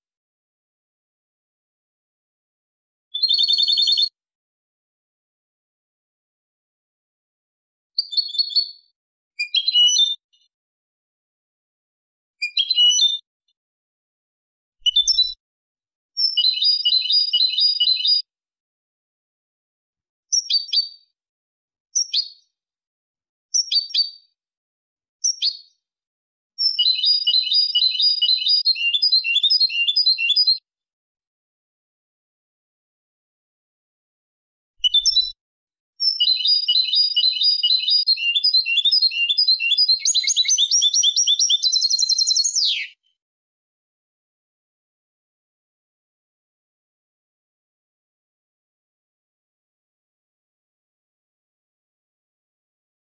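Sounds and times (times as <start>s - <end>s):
goldfinch singing rapid trill: 26.6s - 30.6s, 36.0s - 43.0s.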